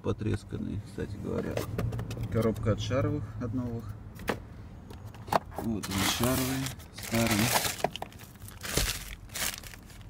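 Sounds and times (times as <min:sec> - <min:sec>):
plastic bag crinkling: 0:05.9 - 0:10.0.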